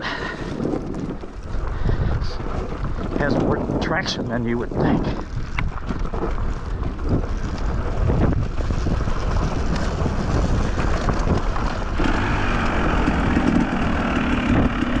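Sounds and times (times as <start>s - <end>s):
dirt bike engine running: 0.0s - 15.0s
wind noise on microphone: 0.0s - 15.0s.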